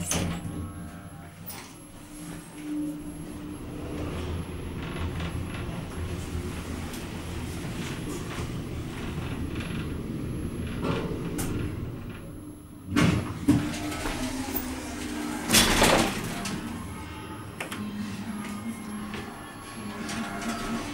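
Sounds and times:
elevator car rumbling in shaft: 0:00.0 - 0:20.9
loud elevator arrival sound: 0:00.0 - 0:20.9.

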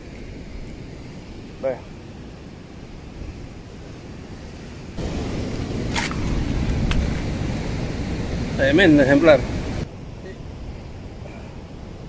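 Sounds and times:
wind on microphone: 0:00.0 - 0:12.0
surf: 0:01.5 - 0:12.0.

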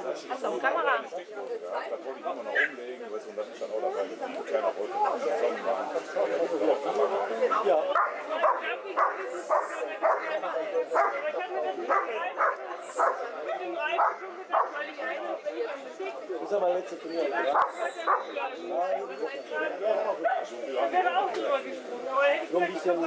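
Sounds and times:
people talking: 0:00.0 - 0:23.0
dog barking: 0:08.0 - 0:10.4, 0:11.0 - 0:11.2, 0:11.9 - 0:14.8, 0:17.5 - 0:18.3.

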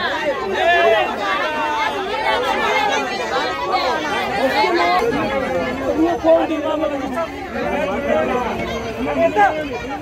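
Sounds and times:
crowd chatter: 0:00.0 - 0:10.0
people arguing loudly: 0:00.0 - 0:10.0.

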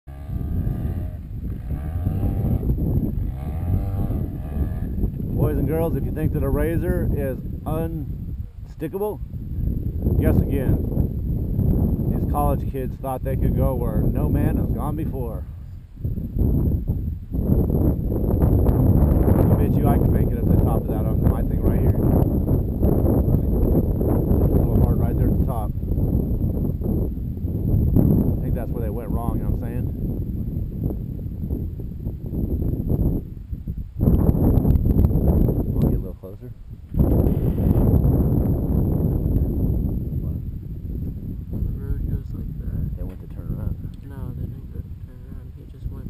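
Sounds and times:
vehicle rumbling on dirt road: 0:00.0 - 0:45.9
off-road vehicle engine revving: 0:00.1 - 0:07.8.

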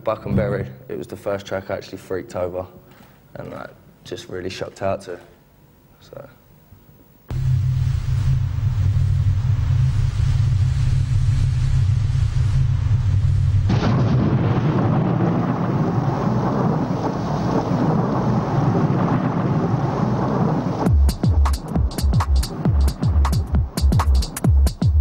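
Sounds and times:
deep bass tone: 0:07.3 - 0:13.8
dense rushing noise: 0:07.3 - 0:14.0.

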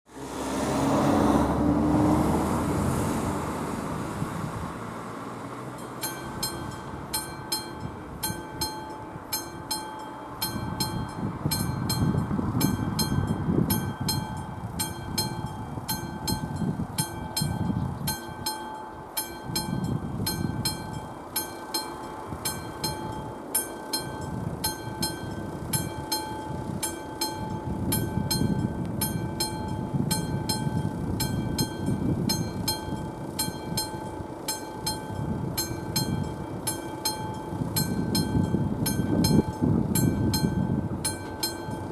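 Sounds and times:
road vehicles rumbling past: 0:00.1 - 0:41.9
level crossing bell ringing: 0:05.8 - 0:41.9.

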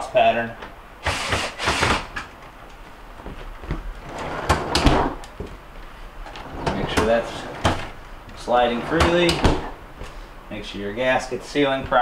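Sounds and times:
freezer drawer sliding shut: 0:04.1 - 0:05.2, 0:06.3 - 0:09.8
drawer knocks: 0:08.8 - 0:09.8.

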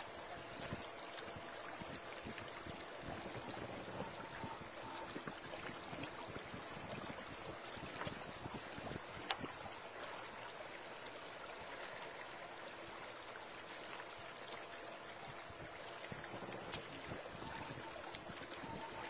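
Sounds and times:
water rushing around boat: 0:00.0 - 0:19.0.

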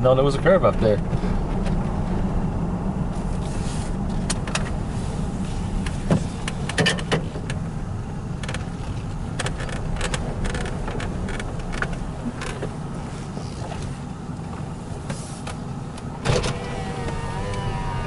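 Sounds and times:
car engine and road noise: 0:00.0 - 0:18.0.

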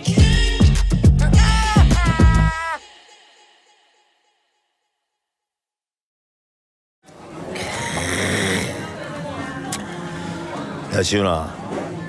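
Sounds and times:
background noise: 0:07.0 - 0:12.0.

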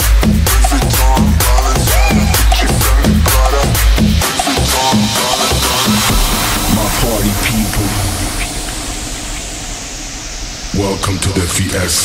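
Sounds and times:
electronic bass line: 0:00.0 - 0:11.4
white-noise sweep: 0:00.0 - 0:12.0.

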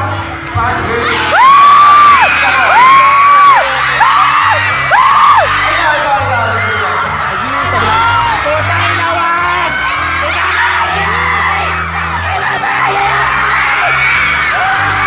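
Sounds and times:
crowd cheering: 0:00.0 - 0:15.0
low pulsing bass line: 0:02.2 - 0:15.0.

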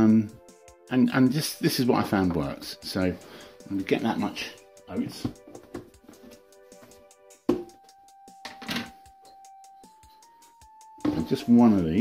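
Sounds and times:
background music of held notes: 0:00.0 - 0:12.0
plastic container knocking on worktop: 0:07.5 - 0:07.8.

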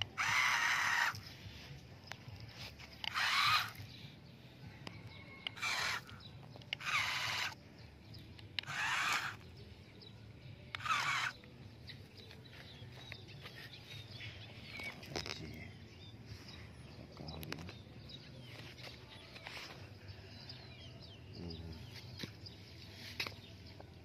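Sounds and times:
toy truck motor whining: 0:00.0 - 0:01.3, 0:02.8 - 0:04.0, 0:05.4 - 0:07.6, 0:08.6 - 0:09.6, 0:10.7 - 0:11.5.

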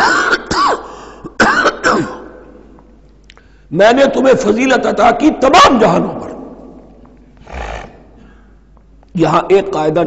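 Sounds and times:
man coughing: 0:00.0 - 0:02.4.

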